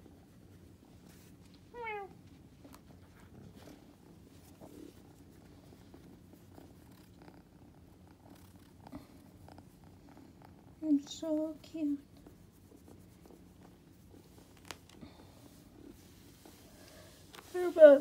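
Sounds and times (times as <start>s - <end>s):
kitten purring: 0.0s - 18.0s.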